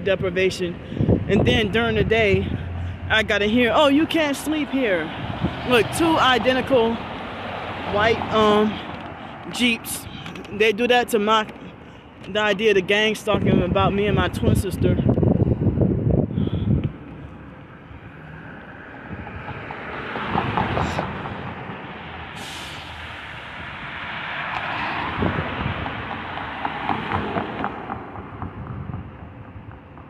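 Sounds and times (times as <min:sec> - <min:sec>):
cars driving past: 0:00.0 - 0:30.0
bus driving past: 0:02.0 - 0:09.6, 0:15.1 - 0:30.0.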